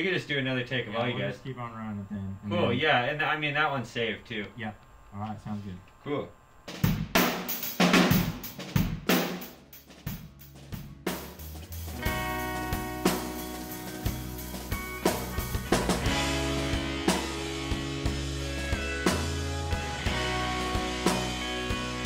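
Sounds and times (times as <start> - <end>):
rock drum kit: 6.7 - 22.0
rock band playing: 6.8 - 22.0.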